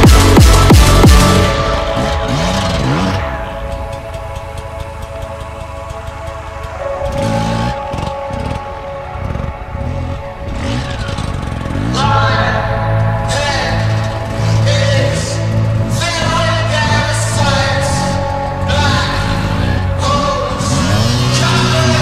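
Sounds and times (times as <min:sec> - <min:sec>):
background music with held chords: 0:00.0 - 0:22.0
two-stroke motorcycle engine revving: 0:00.0 - 0:22.0.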